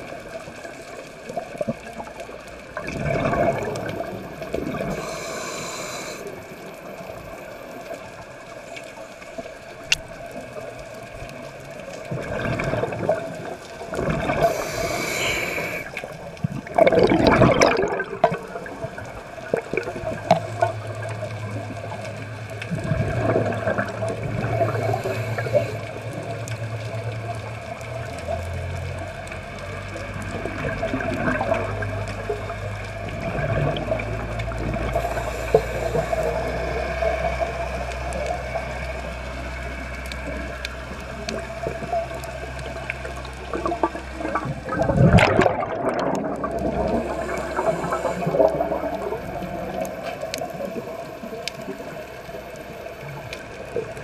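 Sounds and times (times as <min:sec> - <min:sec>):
underwater bubbles gurgling: 0:00.0 - 0:54.0.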